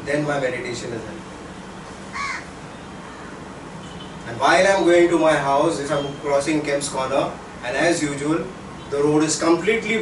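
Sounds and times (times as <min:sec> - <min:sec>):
bird cawing: 0:02.1 - 0:03.5.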